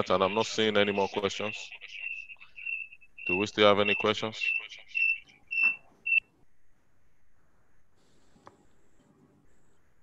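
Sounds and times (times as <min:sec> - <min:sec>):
short high-pitched chirps: 0:02.0 - 0:06.2.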